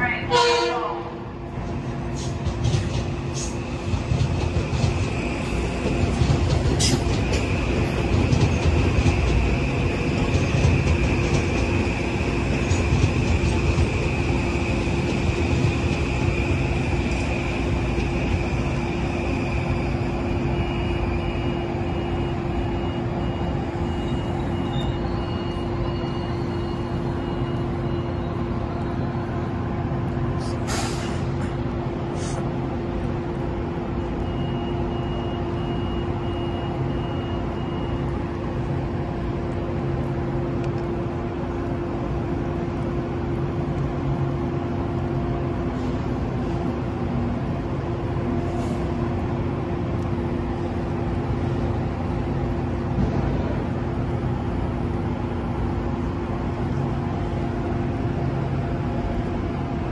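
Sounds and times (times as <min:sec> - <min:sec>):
train equipment humming: 0:00.0 - 0:59.9
repeating beep: 0:01.0 - 0:48.2, 0:49.1 - 0:59.9.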